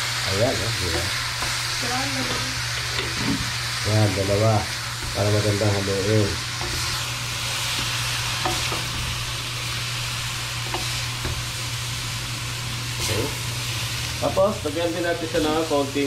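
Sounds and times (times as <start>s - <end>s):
food sizzling in a wok: 0.0s - 16.0s.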